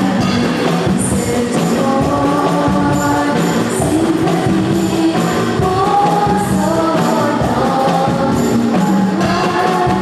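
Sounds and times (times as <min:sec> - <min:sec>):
live band playing: 0:00.0 - 0:10.0
steady drum beat: 0:00.0 - 0:10.0
women singing: 0:00.0 - 0:10.0.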